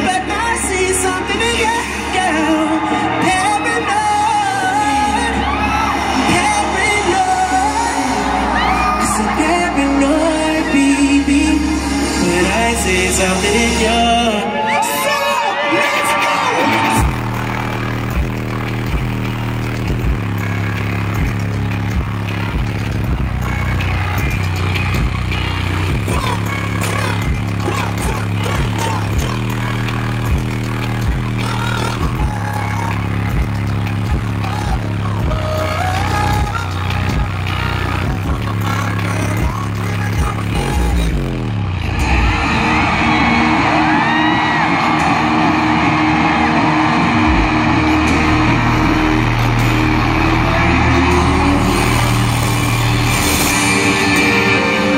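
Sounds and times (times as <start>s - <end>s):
deep held bass notes: 0.0s - 14.6s, 16.8s - 54.9s
kick-drum beat: 32.0s - 32.5s.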